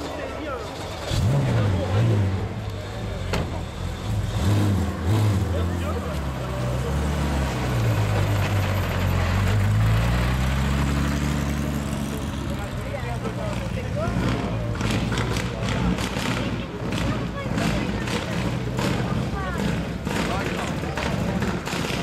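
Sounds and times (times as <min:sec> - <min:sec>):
people talking: 0:00.0 - 0:04.2, 0:04.9 - 0:10.3, 0:11.4 - 0:22.0
car engine revving: 0:00.8 - 0:22.0.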